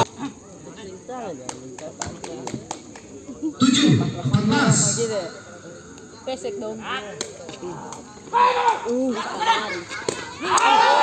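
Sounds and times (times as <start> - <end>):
spectators shouting and cheering: 8.3 - 11.0.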